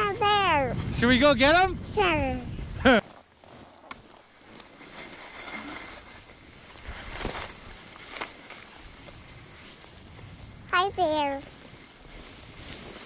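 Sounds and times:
ski scrapes: 0.0s - 13.0s
skis sliding over snow: 0.0s - 13.0s.

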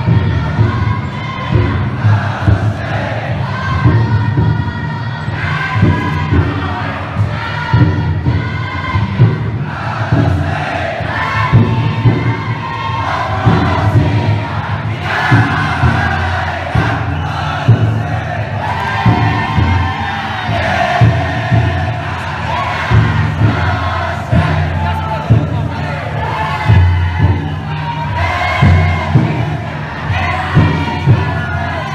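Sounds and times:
crowd: 0.0s - 31.9s
people chanting in unison: 0.0s - 31.9s
taiko drum beating: 0.0s - 31.9s.

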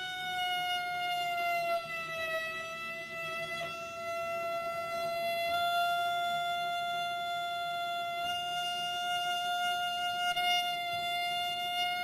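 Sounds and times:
cello holding a high note: 0.0s - 12.0s.

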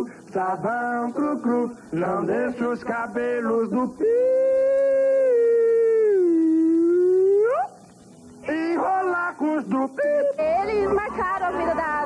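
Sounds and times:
choppy singing: 0.0s - 6.9s.

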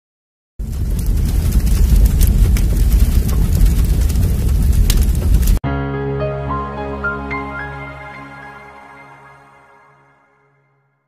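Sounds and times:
fire crackles: 0.6s - 5.6s
fire rumble: 0.6s - 5.6s.

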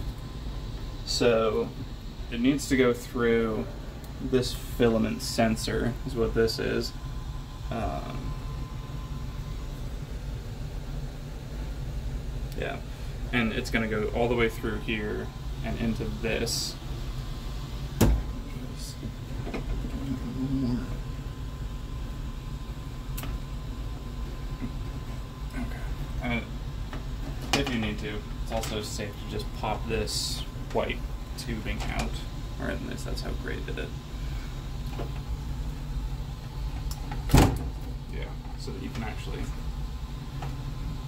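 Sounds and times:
fans humming: 0.0s - 41.0s
thump: 18.0s - 18.2s.

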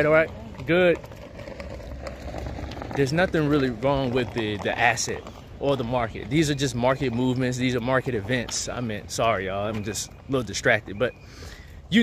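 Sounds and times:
low outdoor rumble: 0.0s - 11.2s.

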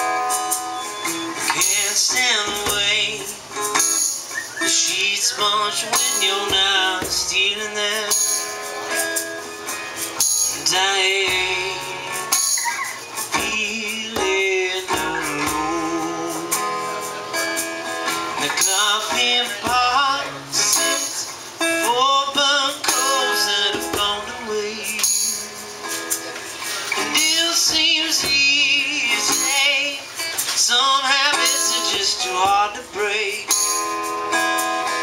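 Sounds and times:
hand percussion: 0.0s - 22.1s, 22.7s - 35.0s
strummed acoustic guitar: 0.0s - 35.0s
man singing: 1.1s - 9.2s, 10.5s - 12.6s, 13.2s - 17.6s, 18.3s - 35.0s.

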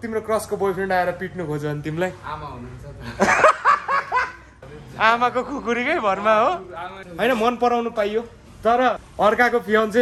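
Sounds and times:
young man laughing: 3.0s - 4.5s.

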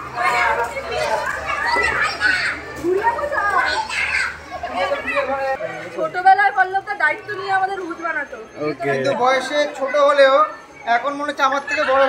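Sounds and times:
children shouting and chattering: 0.0s - 12.0s.

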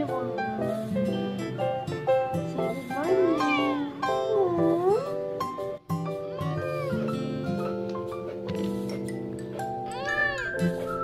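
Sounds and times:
background music: 0.0s - 11.0s
cat meowing: 2.8s - 5.1s, 6.3s - 7.0s, 9.9s - 10.6s.

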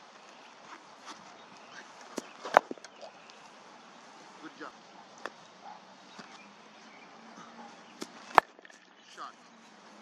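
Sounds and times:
cricket bat striking ball: 7.9s - 8.8s.

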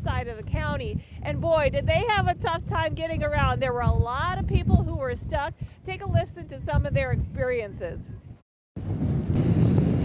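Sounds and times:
steady high whine: 9.2s - 10.0s.

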